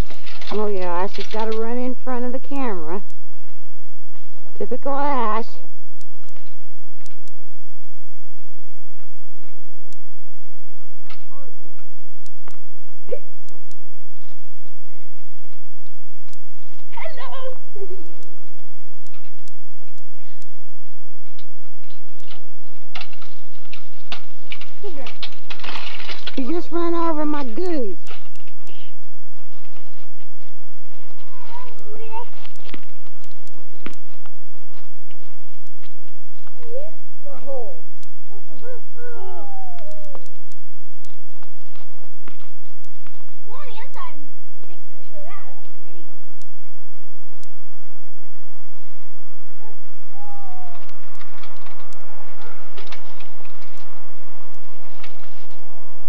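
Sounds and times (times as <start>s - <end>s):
camcorder tape hiss: 0.0s - 56.0s
faint voice-like sounds: 36.6s - 40.2s, 49.6s - 50.9s
dog whining: 36.8s - 40.4s, 49.6s - 51.0s
faint clicks: 39.7s - 43.2s, 50.7s - 53.9s.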